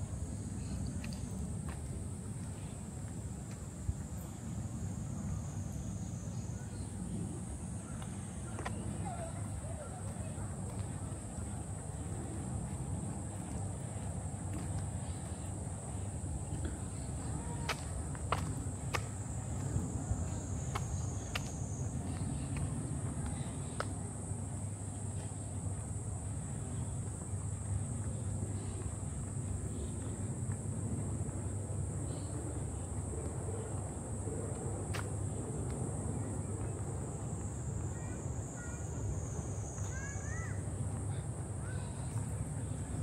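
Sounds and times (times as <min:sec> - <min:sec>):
cicadas buzzing: 0:00.0 - 0:43.0.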